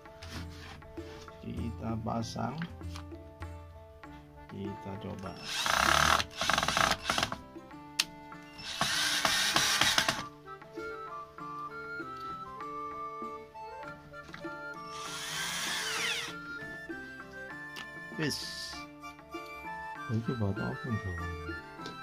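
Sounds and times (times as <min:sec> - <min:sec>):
background music: 0:00.0 - 0:22.0
cordless drill driving screws: 0:05.3 - 0:07.4, 0:08.6 - 0:10.3, 0:14.8 - 0:16.4.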